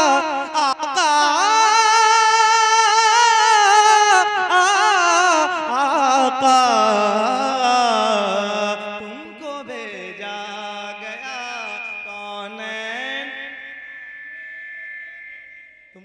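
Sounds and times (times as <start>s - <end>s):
man singing unaccompanied: 0.0s - 13.7s.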